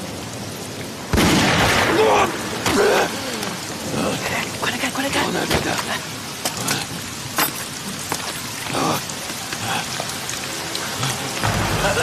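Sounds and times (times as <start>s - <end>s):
heavy rain pouring: 0.0s - 12.0s.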